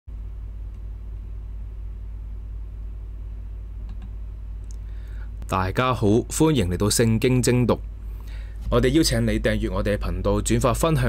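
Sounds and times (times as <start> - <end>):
steady low hum: 0.1 - 11.0
faint click: 0.7 - 0.9.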